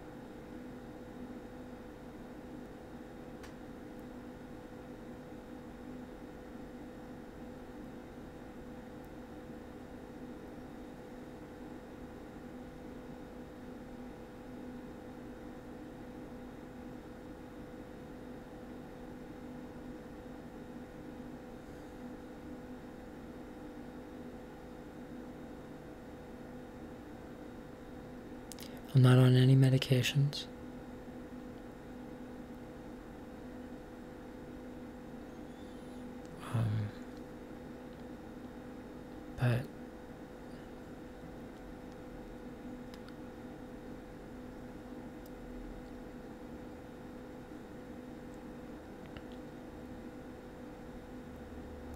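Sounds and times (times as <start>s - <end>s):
low electrical hum with hiss: 0.0s - 51.9s.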